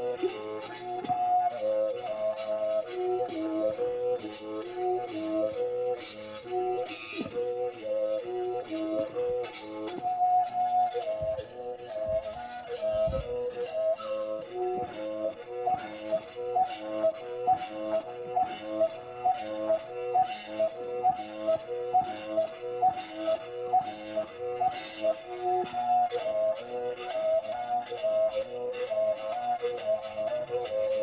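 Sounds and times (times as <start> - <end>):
mouth bow melody: 0.0 - 31.0.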